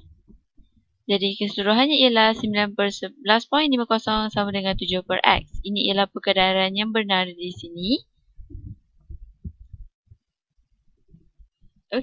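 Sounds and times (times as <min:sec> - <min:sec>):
low handling thumps and rumble: 0:00.0 - 0:00.8, 0:07.5 - 0:10.3.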